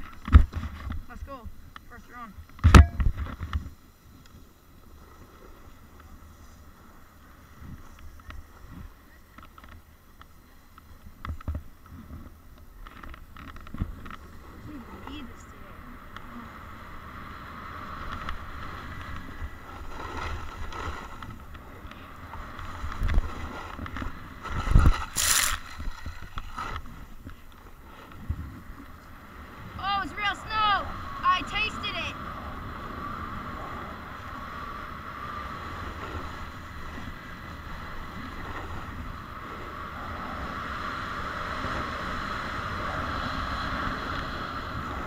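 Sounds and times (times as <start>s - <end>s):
wind rushing on microphone: 0.0s - 9.8s, 10.8s - 45.0s
snowboard sliding over snow: 0.0s - 45.0s.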